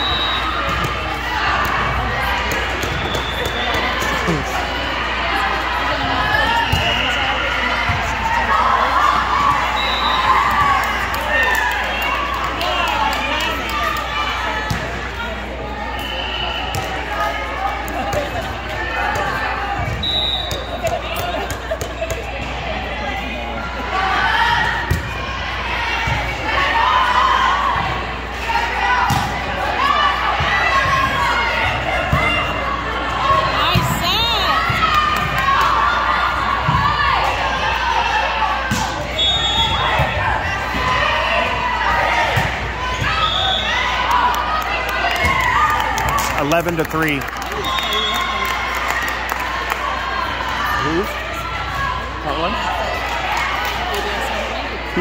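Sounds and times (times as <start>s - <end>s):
chatter and calls of people: 0.0s - 55.0s.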